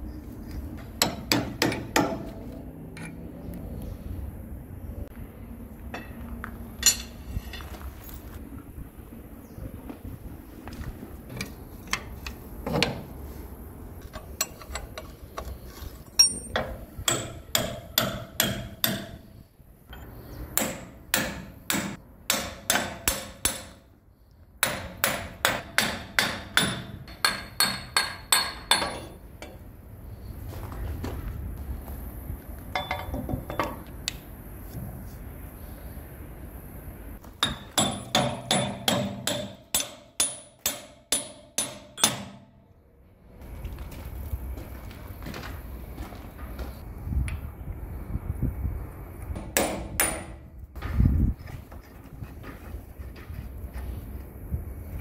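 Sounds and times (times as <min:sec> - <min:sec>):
hammer striking steel: 0:00.8 - 0:02.4, 0:06.8 - 0:07.4, 0:16.2 - 0:19.3, 0:20.6 - 0:23.9, 0:24.6 - 0:29.6, 0:37.4 - 0:42.6, 0:49.4 - 0:50.5.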